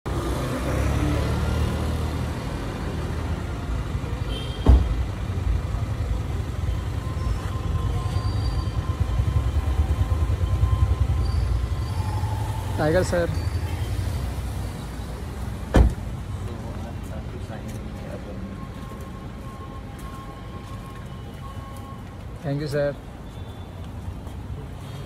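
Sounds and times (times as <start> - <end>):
sharp thump: 15.7 - 16.1.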